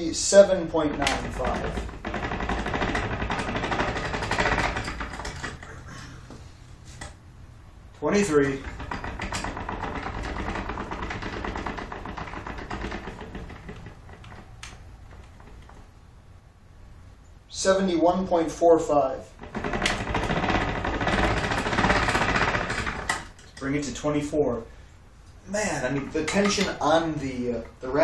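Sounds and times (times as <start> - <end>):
ratchet clicking rapidly: 0.4 - 5.6, 19.4 - 24.0.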